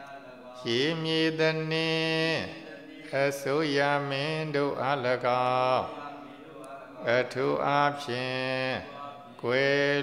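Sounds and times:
monk chanting: 0.0 - 10.0.

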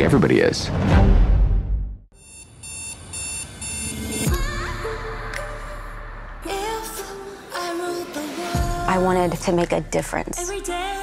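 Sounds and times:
high-pitched electronic beeps: 2.2 - 4.4.

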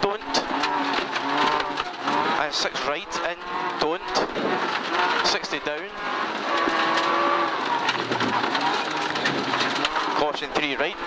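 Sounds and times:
rally car engine at high revs: 0.0 - 11.0.

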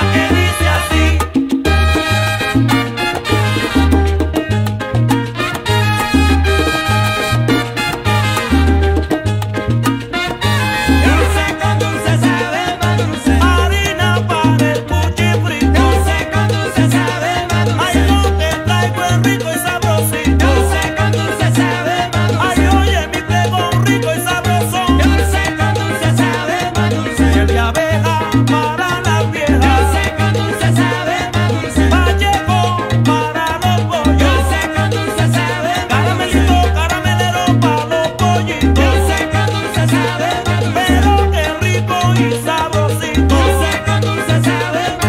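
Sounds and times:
salsa music: 0.0 - 45.0.

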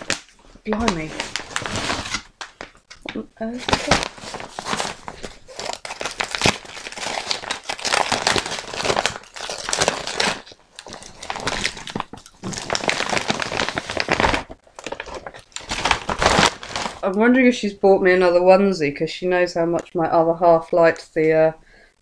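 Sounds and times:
gift wrap crinkling: 0.0 - 17.1.

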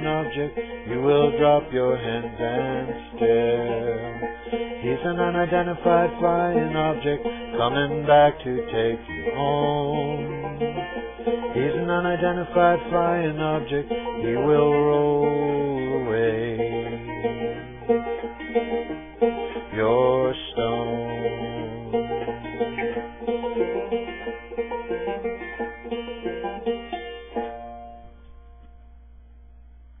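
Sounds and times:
banjo playing chords and runs: 0.0 - 29.1.

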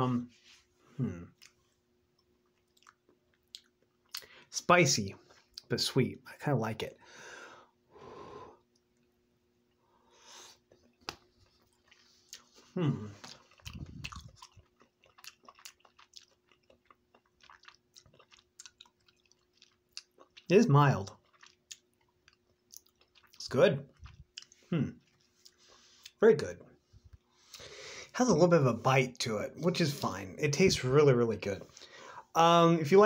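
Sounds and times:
chewing food: 1.4 - 4.5, 10.6 - 27.6.

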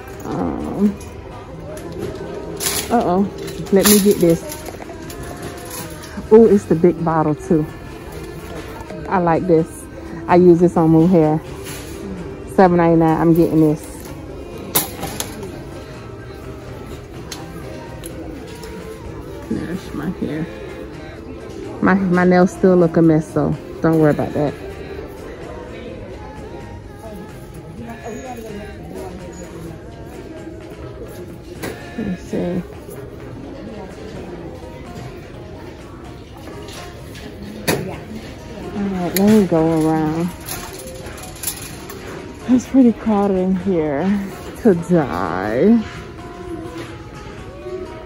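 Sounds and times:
store background music: 0.0 - 48.0.

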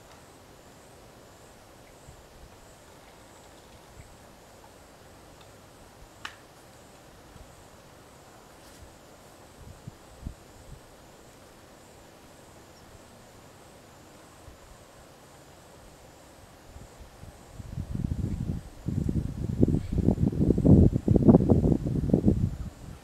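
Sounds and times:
faint outdoor ambience: 0.0 - 23.0.

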